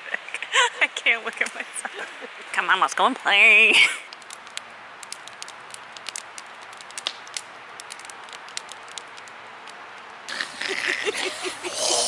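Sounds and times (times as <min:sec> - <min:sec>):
campfire crackling and popping: 0:00.0 - 0:12.0.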